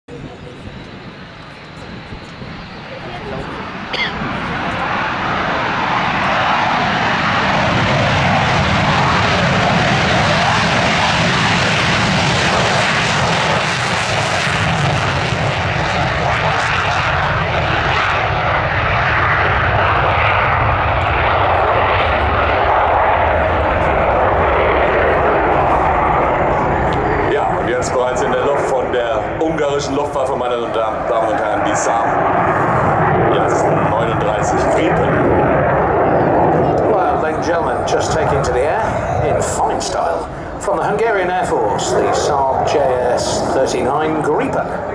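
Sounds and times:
jet engine roaring: 0.1 - 44.9.

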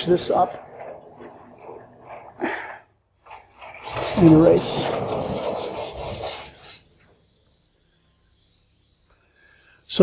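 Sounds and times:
eraser rubbing on chalkboard: 4.7 - 10.0.

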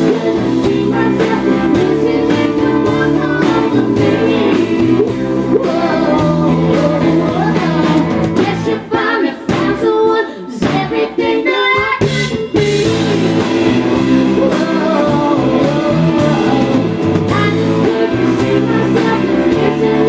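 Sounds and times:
country-rock band playing: 0.0 - 20.0
woman singing: 0.0 - 20.0.

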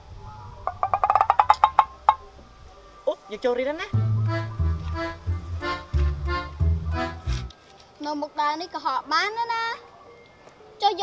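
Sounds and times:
rapid wooden knocks: 0.8 - 1.9.

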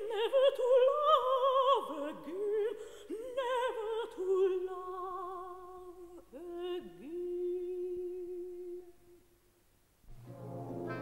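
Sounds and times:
woman singing opera: 0.0 - 9.2.

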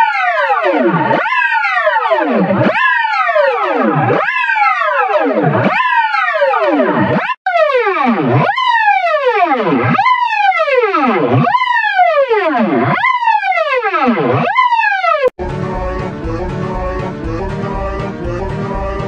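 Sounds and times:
music: 15.4 - 19.0.

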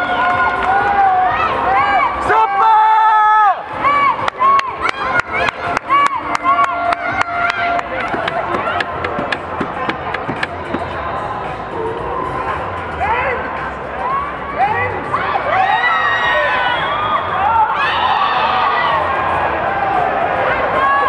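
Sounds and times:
spectators shouting and chanting: 0.0 - 21.0.

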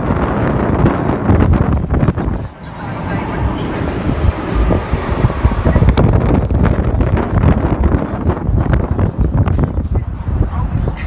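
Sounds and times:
vehicle low rumble: 0.0 - 11.0
wind buffeting microphone: 0.0 - 11.0.

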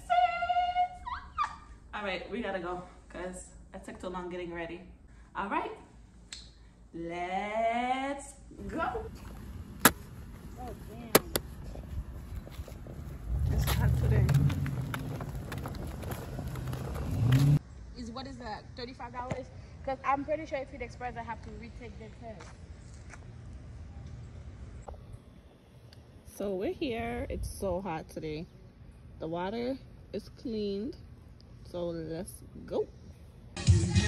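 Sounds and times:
stroller wheels rolling on asphalt: 9.1 - 17.6.

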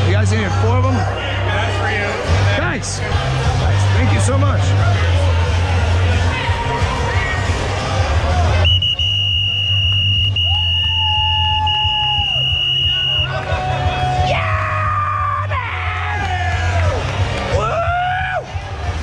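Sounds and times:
bar music with heavy bass: 0.0 - 19.0
crowd yelling and whooping: 3.0 - 19.0.

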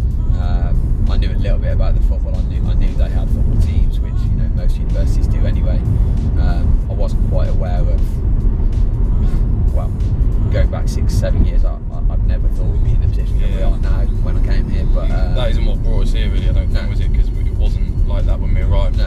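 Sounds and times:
background music: 0.0 - 19.0
car road and engine rumble: 0.0 - 19.0
people talking: 0.4 - 5.8, 6.4 - 8.1, 9.2 - 19.0.

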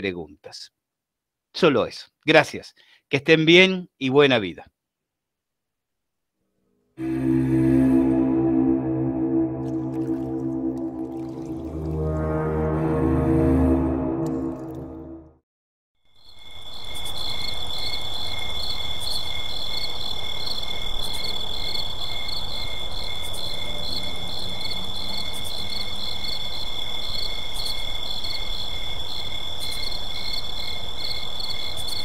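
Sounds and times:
crickets chirping: 16.2 - 32.0.

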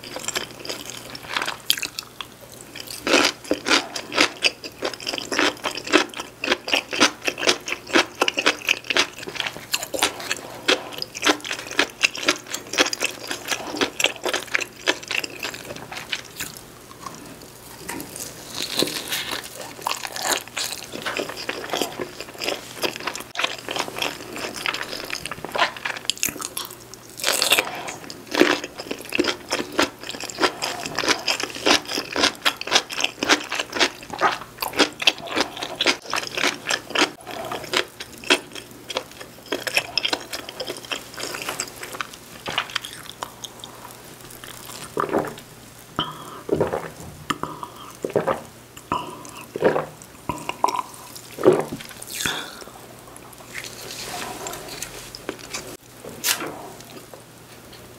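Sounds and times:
close chewing with mouth clicks: 0.0 - 45.4
cola fizz crackling: 0.0 - 57.9.

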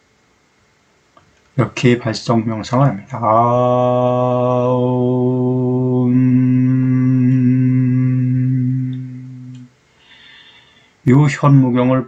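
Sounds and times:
man chanting om: 1.6 - 9.7.

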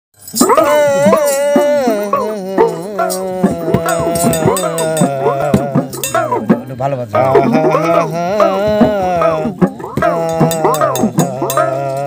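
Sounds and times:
elderly man singing held note: 0.3 - 6.5, 7.2 - 12.0
sharp percussive taps: 0.3 - 12.0.

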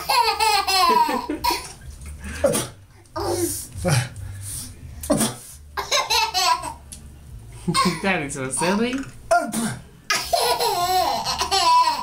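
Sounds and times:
baby laughing: 0.0 - 1.8, 5.2 - 6.8, 7.7 - 8.0, 10.1 - 12.0.

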